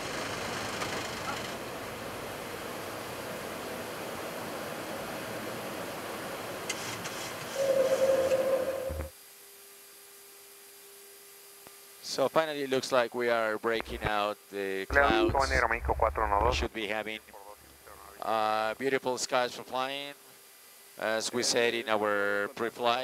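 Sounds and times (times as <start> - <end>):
airflow and engine noise: 0.0 - 9.1
loud hum: 7.6 - 9.1, 14.9 - 18.2.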